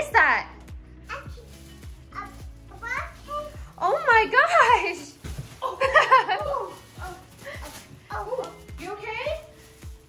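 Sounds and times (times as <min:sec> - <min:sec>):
background music with low beat: 0:00.0 - 0:10.0.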